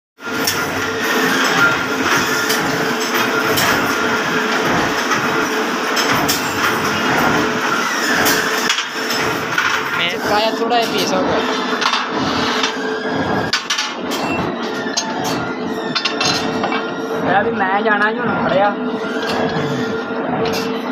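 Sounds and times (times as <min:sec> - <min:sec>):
workshop hum: 0:00.2 - 0:20.9
steel rods clanking: 0:00.4 - 0:17.0.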